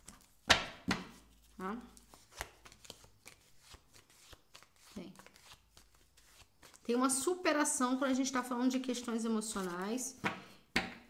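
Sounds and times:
cards being shuffled: 0.0 - 6.9, 9.4 - 10.4.

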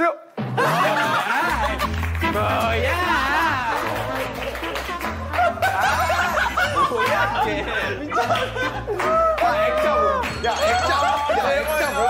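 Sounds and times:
young men laughing and shouting: 0.5 - 12.0.

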